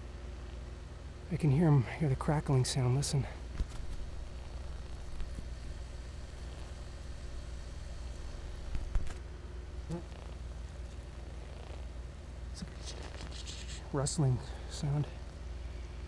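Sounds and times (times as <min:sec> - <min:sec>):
low steady hum: 0:00.0 - 0:16.0
wasps crackling and rustling: 0:01.6 - 0:16.0.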